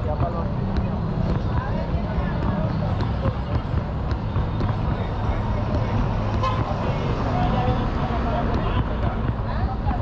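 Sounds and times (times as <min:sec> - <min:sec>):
low rumble of traffic: 0:00.0 - 0:10.0
people talking: 0:00.0 - 0:10.0.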